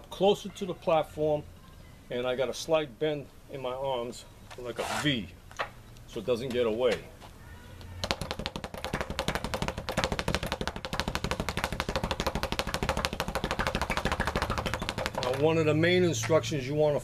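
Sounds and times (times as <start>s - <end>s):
speed bag rattling: 8.0s - 15.8s.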